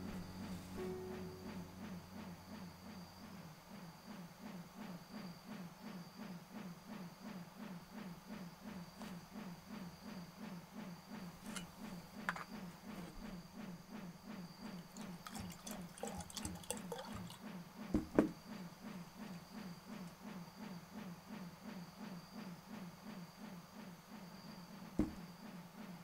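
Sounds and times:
faint steady high tone: 0:00.0 - 0:03.5
low rhythmic pulse: 0:00.0 - 0:05.6
liquid trickling into glass: 0:14.8 - 0:17.4.

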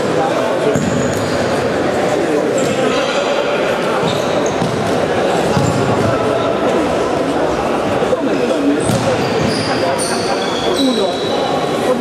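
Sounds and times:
players' voices: 0:00.0 - 0:12.0
ball kicked and bouncing: 0:04.6 - 0:06.1, 0:08.8 - 0:09.5.

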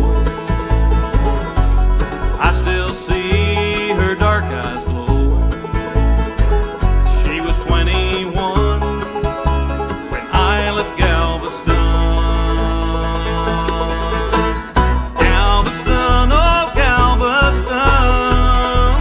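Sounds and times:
bluegrass band playing: 0:00.0 - 0:19.0.

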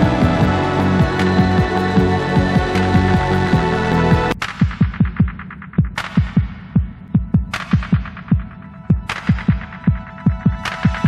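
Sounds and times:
deep bass drum thumps: 0:00.0 - 0:07.5
electronic music: 0:00.0 - 0:11.0.

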